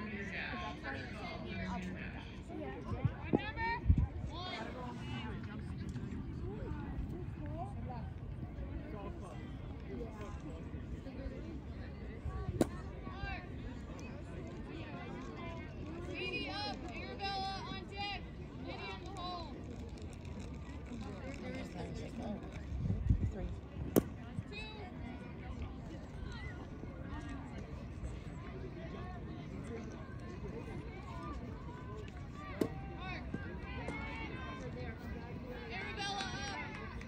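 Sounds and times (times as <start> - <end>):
chatter of voices: 0.0 - 37.0
outdoor noise: 0.0 - 37.0.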